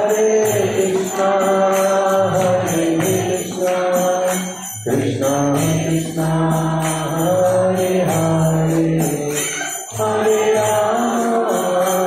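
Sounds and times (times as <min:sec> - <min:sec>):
mridanga drum: 0:00.0 - 0:11.2
jingling hand cymbals: 0:00.0 - 0:12.0
man singing into a microphone: 0:00.0 - 0:12.0.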